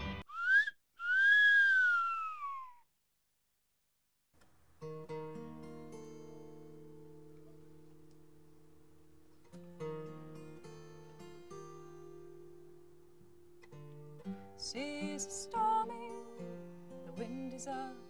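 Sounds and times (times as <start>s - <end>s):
whistled tone sliding in pitch: 0.3s - 2.8s
acoustic guitar chord ringing: 4.8s - 18.0s.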